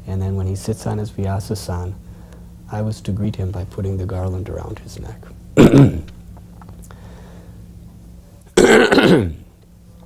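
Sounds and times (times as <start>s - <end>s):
man clearing throat: 5.6s - 6.1s, 8.6s - 9.5s.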